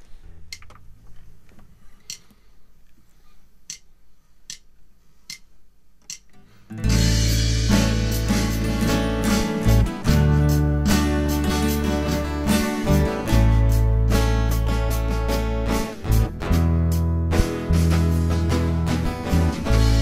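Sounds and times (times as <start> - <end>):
sharp count-in ticks: 2.1 - 2.3, 3.6 - 3.9, 4.5 - 4.7, 5.3 - 6.3
band with acoustic guitar and drums: 6.8 - 20.0.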